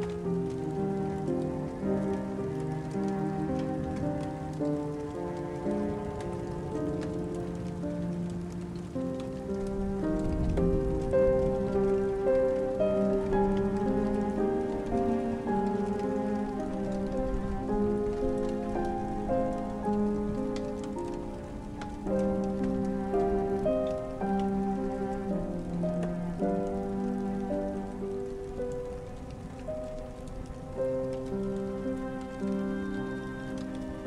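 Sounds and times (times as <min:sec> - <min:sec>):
slow calm instrumental music: 0:00.0 - 0:34.0
steady rain: 0:00.0 - 0:34.0.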